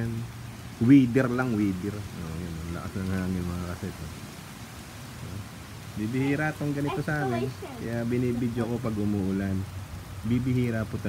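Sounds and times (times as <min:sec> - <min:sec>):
drizzle hissing on pavement: 0:00.0 - 0:11.0.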